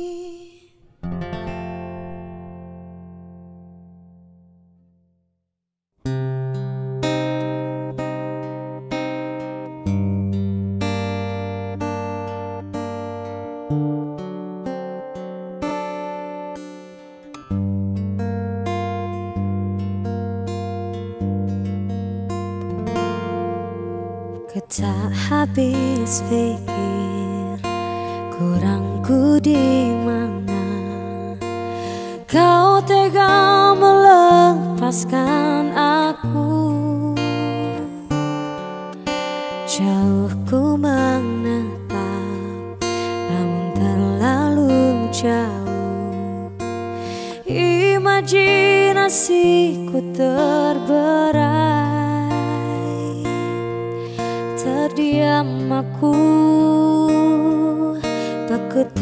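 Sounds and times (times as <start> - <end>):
woman singing: 0.0 - 0.9, 23.0 - 59.0
acoustic pop song: 0.0 - 4.6, 6.1 - 59.0
acoustic guitar picking: 1.0 - 4.7, 6.1 - 59.0.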